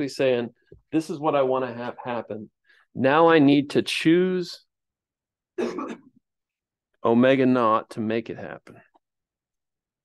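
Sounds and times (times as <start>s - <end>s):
man coughing: 5.6s - 6.2s.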